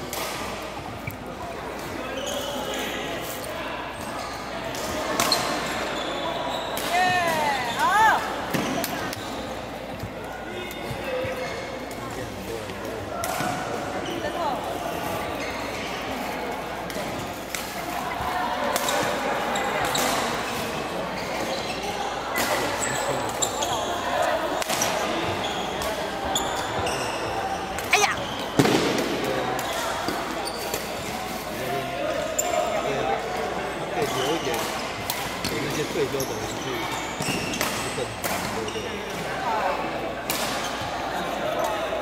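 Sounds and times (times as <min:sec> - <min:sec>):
chatter in large hall: 0:00.0 - 0:42.0
shoes squeaking on court floor: 0:00.8 - 0:28.8, 0:29.6 - 0:31.4, 0:32.1 - 0:39.4.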